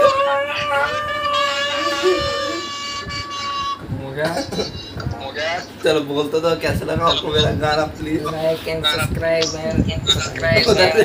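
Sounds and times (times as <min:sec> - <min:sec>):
steady horn-like tone: 0:01.2 - 0:04.0
people laughing: 0:04.2 - 0:05.1.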